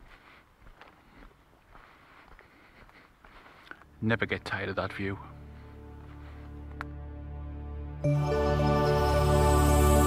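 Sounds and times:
footsteps on dirt path: 0.0 - 7.0.

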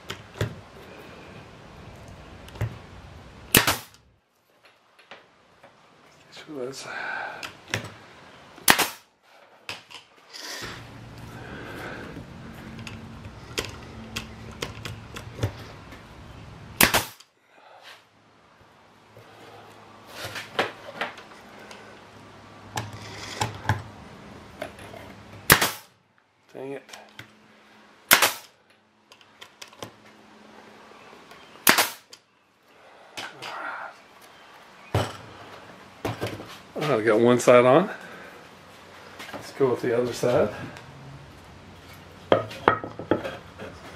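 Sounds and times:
pneumatic nail gun firing: 3.5 - 4.0, 8.6 - 9.1, 16.8 - 17.3, 25.5 - 25.9, 28.1 - 28.5, 31.6 - 32.1
steady low hum: 10.6 - 20.1
knocks of wood being handled: 42.3 - 43.9.

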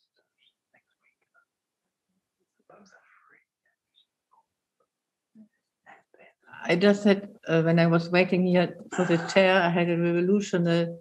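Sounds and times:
faint whispering: 2.7 - 4.1, 5.4 - 6.7.

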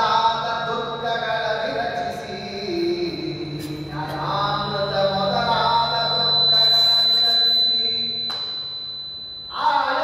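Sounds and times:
man chanting into a microphone: 0.0 - 8.2, 9.5 - 10.0
steady high-pitched whine: 0.0 - 10.0.

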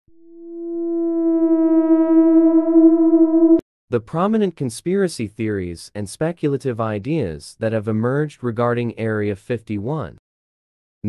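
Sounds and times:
steady electronic tone: 0.1 - 3.6.

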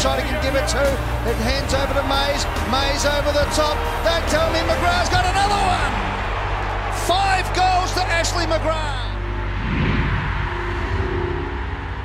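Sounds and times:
rushing noise: 9.2 - 12.0
steady low tones: 9.2 - 12.0.

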